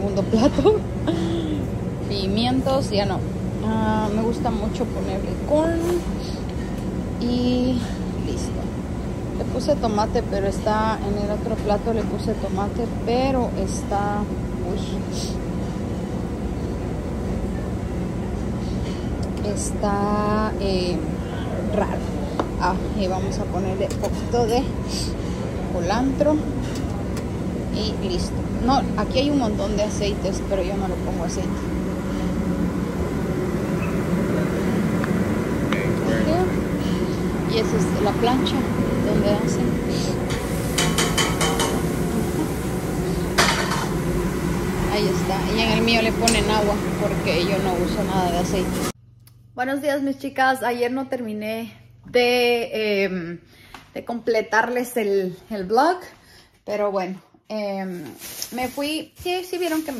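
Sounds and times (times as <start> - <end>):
steady low hum: 0.0 - 57.4
restaurant room noise: 0.0 - 59.9
dishes and utensils clattering: 40.3 - 41.9.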